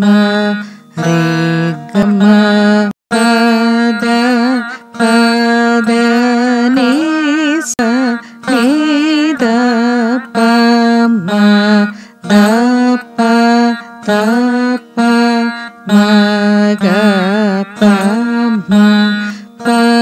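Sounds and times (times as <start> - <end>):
veena plucked notes bending: 0.0 - 20.0.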